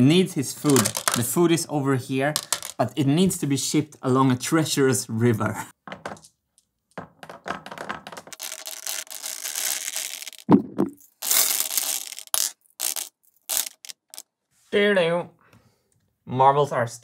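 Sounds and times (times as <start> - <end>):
steel marbles rolling rattle: 0.6 - 1.2, 2.4 - 2.8, 7.2 - 10.5, 11.1 - 14.2
marble clicks: 0.6 - 1.3, 2.4 - 2.8, 5.9 - 14.2
knock: 5.8 - 6.2.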